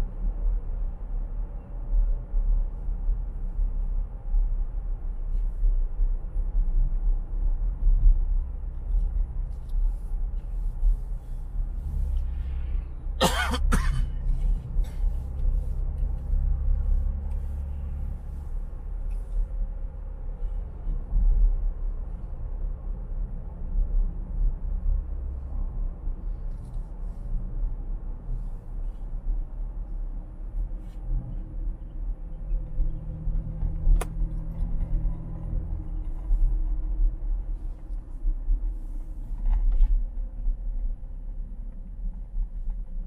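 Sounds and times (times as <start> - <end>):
car road noise rumble: 0.0 - 43.0
person coughing: 13.2 - 14.2.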